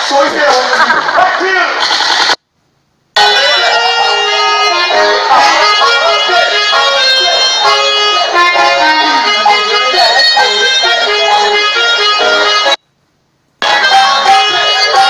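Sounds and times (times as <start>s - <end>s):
loud party music: 0.0s - 2.4s, 3.2s - 12.8s, 13.6s - 15.0s
person singing: 13.6s - 15.0s.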